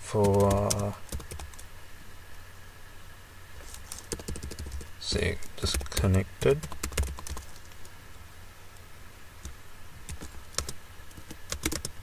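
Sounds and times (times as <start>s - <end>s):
typing on computer keyboard: 0.2s - 1.6s, 3.8s - 4.9s, 5.6s - 7.8s, 10.1s - 12.0s.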